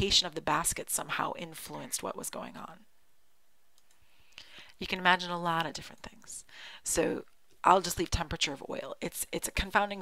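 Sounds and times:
woman speaking: 0.0 - 2.9, 4.8 - 10.0
faint sharp clicks: 3.7 - 4.5.

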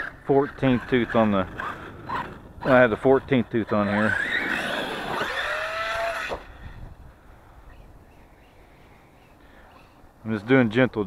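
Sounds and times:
electric motor whining: 3.6 - 6.6.

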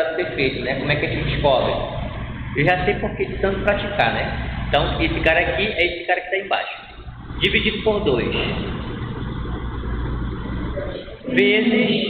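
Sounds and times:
low rumble: 7.0 - 11.2.

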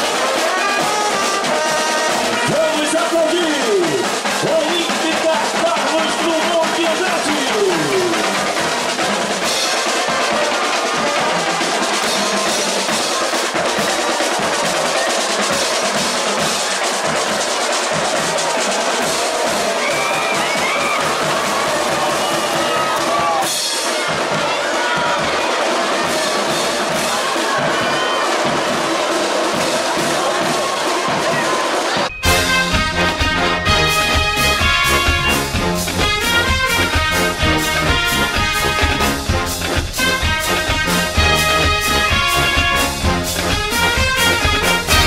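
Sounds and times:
brass: 0.0 - 45.0
snare drums: 0.0 - 45.0
bass drums: 32.1 - 45.0.

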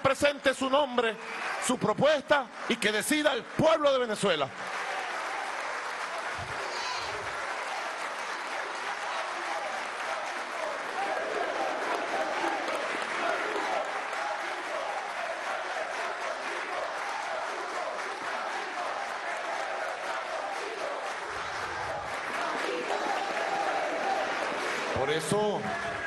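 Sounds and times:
crowd applauding: 0.0 - 26.0
crowd voices: 6.0 - 26.0.

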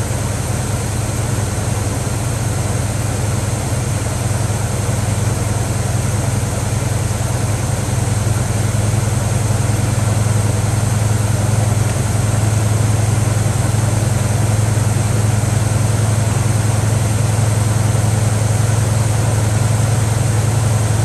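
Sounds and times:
car engine idling: 0.0 - 21.0.

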